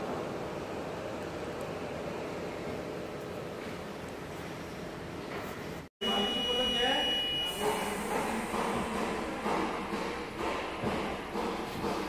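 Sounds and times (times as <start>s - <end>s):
high electronic beep tone: 6.0s - 7.9s.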